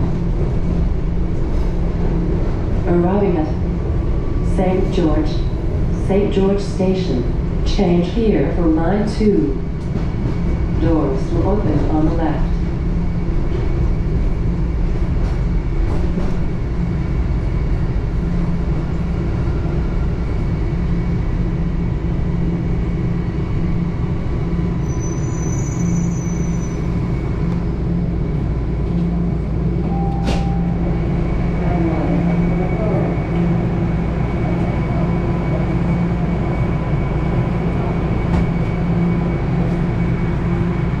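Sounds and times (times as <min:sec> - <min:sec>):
subway car rumble and hum: 0:00.0 - 0:41.0.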